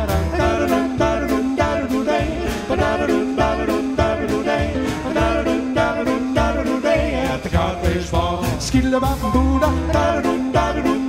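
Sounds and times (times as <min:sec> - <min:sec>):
jazz band playing swing: 0:00.0 - 0:11.0.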